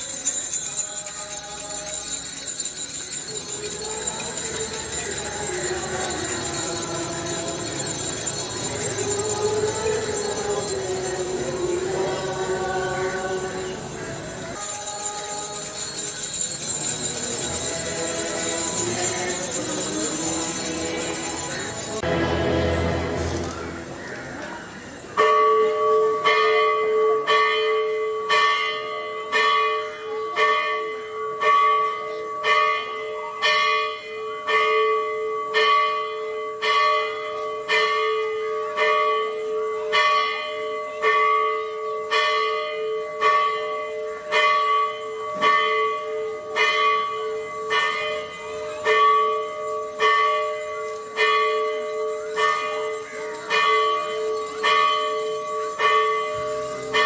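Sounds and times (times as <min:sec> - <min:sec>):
church bell ringing: 0:00.0 - 0:24.1, 0:24.9 - 0:57.0.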